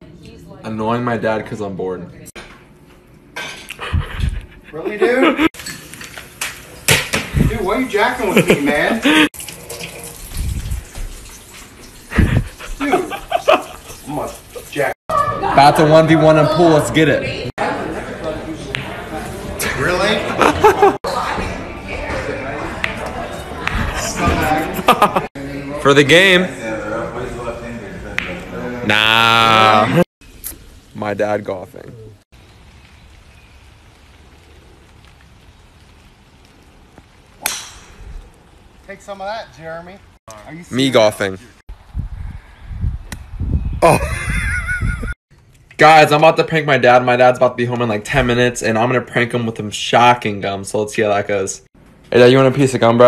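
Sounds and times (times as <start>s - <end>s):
outdoor background hiss: 0.0s - 15.0s, 24.8s - 53.0s.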